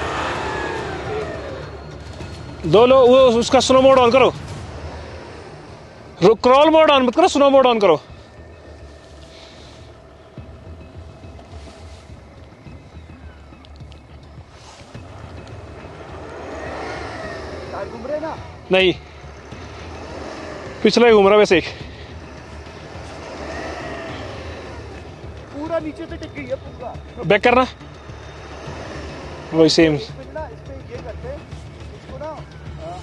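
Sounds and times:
car engine revving under load: 0.0s - 32.8s.

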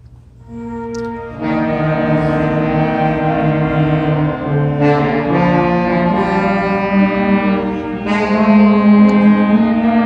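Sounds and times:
concert band playing held chords: 0.5s - 10.0s.

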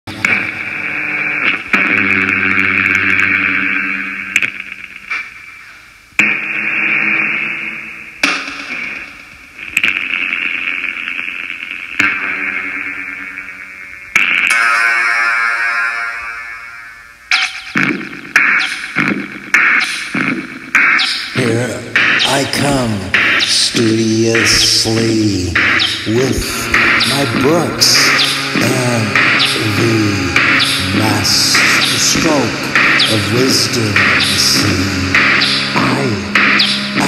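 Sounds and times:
distorted synth swells: 20.8s - 37.0s.

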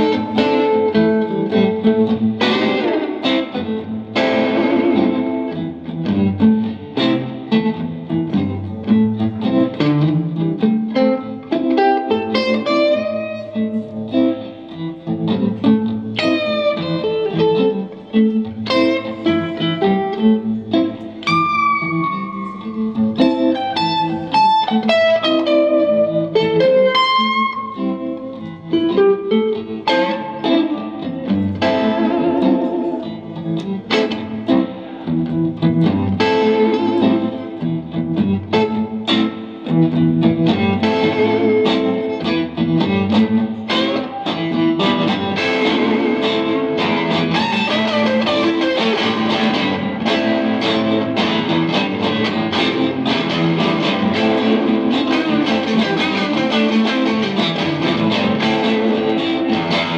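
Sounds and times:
two guitars playing: 0.0s - 59.9s.

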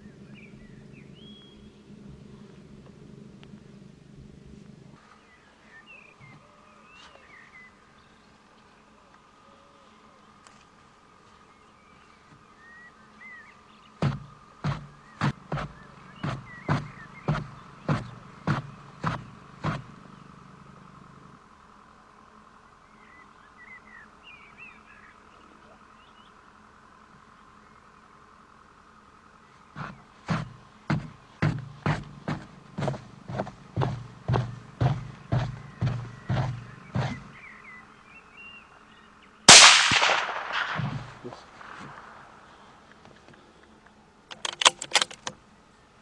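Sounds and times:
birds chirping faintly: 0.0s - 46.0s
bullet striking knock: 39.5s - 42.0s
rifle shot: 39.5s - 42.4s.

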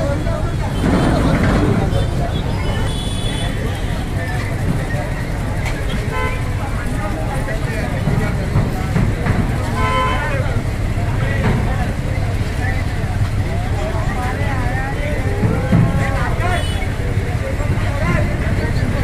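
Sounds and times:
crowd voices and shouts: 0.0s - 19.0s.

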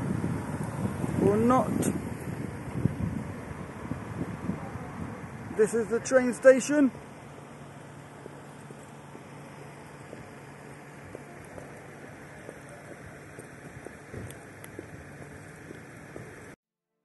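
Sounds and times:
low traffic hum: 0.0s - 16.6s.

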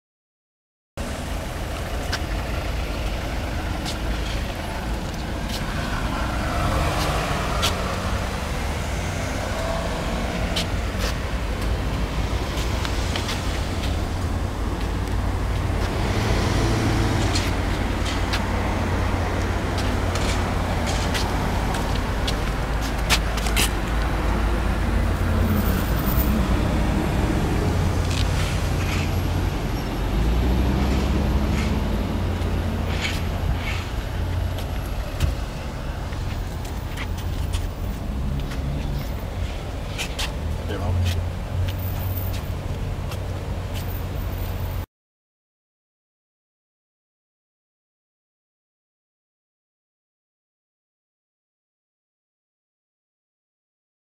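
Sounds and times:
car engine idling: 1.0s - 6.4s.

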